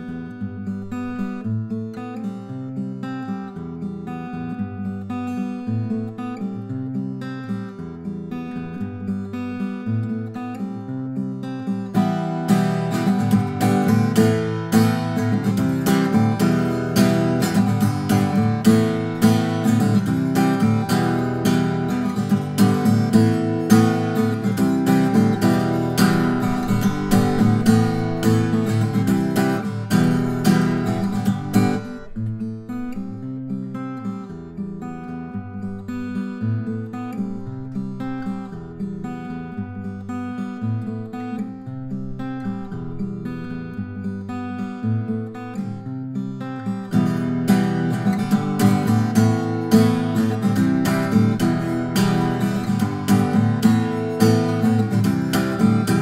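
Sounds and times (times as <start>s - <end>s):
fingerpicked acoustic guitar: 0.0s - 56.0s.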